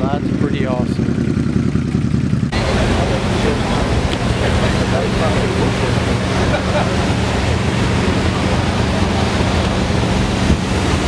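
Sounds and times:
crowd talking: 0:02.5 - 0:11.0
wind noise on microphone: 0:07.2 - 0:11.0.

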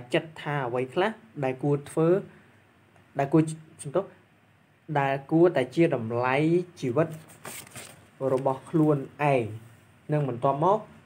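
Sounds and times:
man talking: 0:00.0 - 0:02.3, 0:03.1 - 0:04.2, 0:04.9 - 0:07.3, 0:08.2 - 0:11.0.

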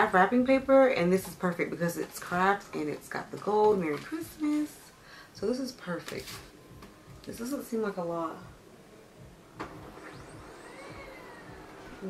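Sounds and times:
printer motor whirring: 0:09.2 - 0:12.0.

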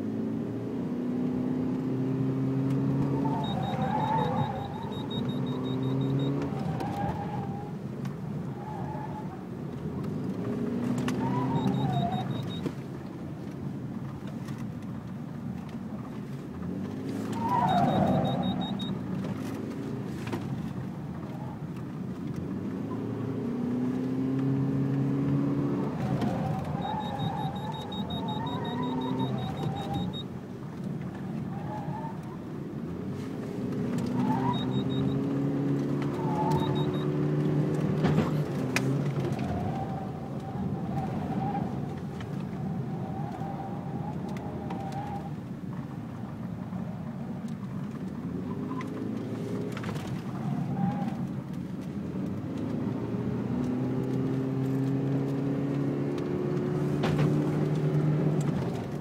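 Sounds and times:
car engine surging: 0:00.0 - 0:12.6, 0:16.0 - 0:45.9
tyres squealing: 0:03.0 - 0:07.6, 0:26.0 - 0:30.2.

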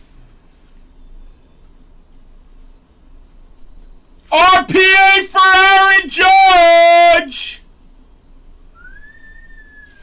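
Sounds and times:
man's drawn-out exclamation: 0:04.3 - 0:07.6
soft whistled note: 0:08.8 - 0:10.0.

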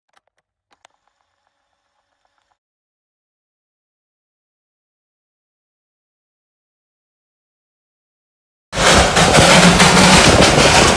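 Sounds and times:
steam locomotive rushing: 0:08.8 - 0:10.9
wind on microphone: 0:08.9 - 0:10.9.

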